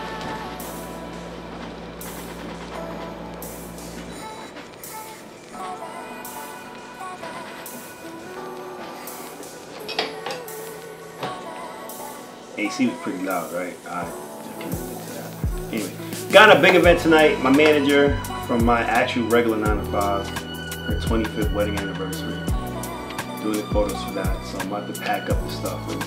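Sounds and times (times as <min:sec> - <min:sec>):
air conditioner humming: 0:00.0 - 0:26.0
background music: 0:00.0 - 0:26.0.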